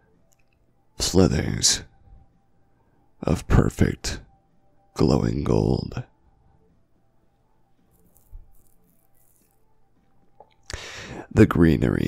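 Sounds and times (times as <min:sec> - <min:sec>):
soft shaking rattle: 0:07.9 - 0:09.7.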